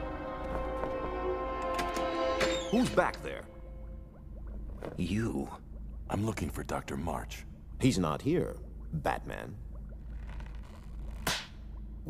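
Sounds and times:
low steady hum: 0:00.0 - 0:12.0
rubber glove snapping: 0:10.1 - 0:11.6.

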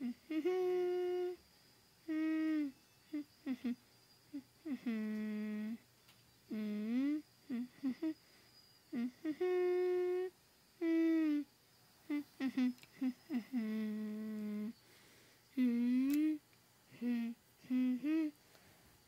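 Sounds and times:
person humming: 0:00.0 - 0:01.4, 0:02.0 - 0:05.8, 0:06.5 - 0:08.2, 0:08.9 - 0:11.5, 0:12.1 - 0:14.8, 0:15.5 - 0:18.4.

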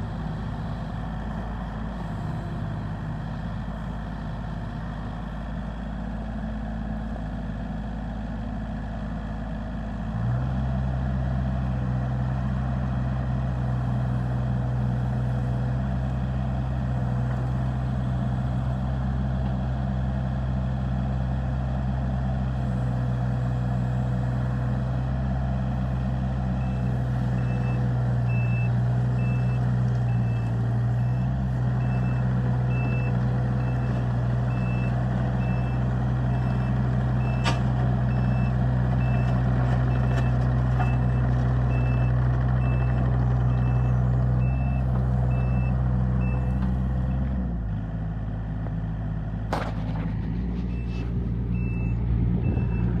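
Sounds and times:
diesel engine running: 0:00.0 - 0:53.0.

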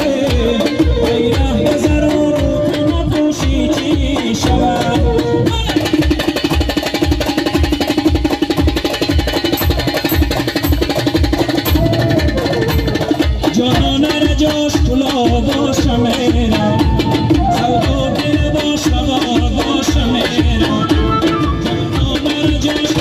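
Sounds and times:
programmed drum beat: 0:00.0 - 0:23.0
flute playing melody: 0:00.8 - 0:03.8, 0:04.4 - 0:05.8, 0:11.7 - 0:13.2, 0:16.5 - 0:18.9, 0:20.6 - 0:22.3.

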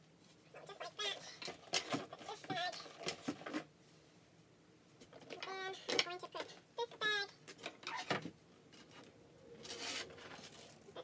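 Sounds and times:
woman speaking: 0:00.6 - 0:01.4.

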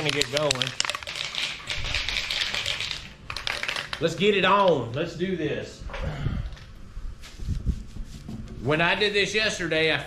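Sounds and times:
spray can ball rattling: 0:00.0 - 0:04.2.

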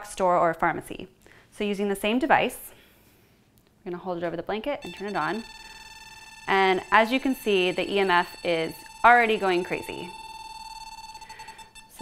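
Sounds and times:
fluttering high-pitched meter tone: 0:04.8 - 0:12.0.

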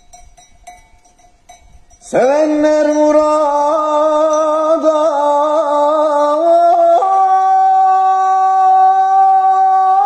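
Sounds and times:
man singing unaccompanied: 0:02.0 - 0:10.0.

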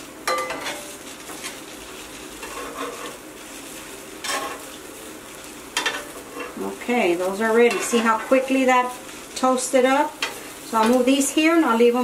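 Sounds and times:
vegetables sizzling on griddle: 0:00.0 - 0:12.0.

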